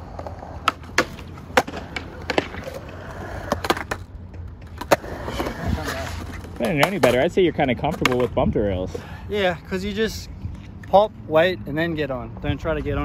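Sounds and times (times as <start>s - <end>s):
skateboard clacking on concrete and rail: 0.0s - 8.4s
skateboard wheels rolling on concrete: 0.0s - 13.0s.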